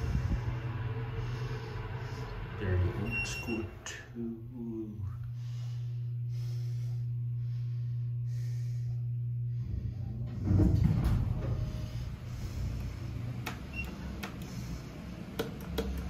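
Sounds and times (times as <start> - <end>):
elevator machinery humming: 0.0 - 16.0.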